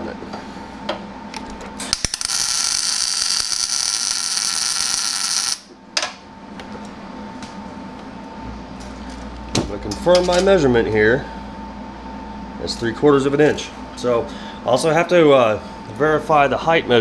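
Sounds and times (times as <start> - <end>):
welding arc hissing: 1.8 - 5.7
welding arc striking clicks: 1.8 - 6.2.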